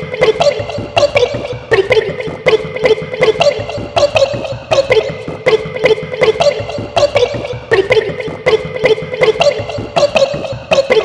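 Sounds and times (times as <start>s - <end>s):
sample-based remix beat: 0.0s - 11.0s.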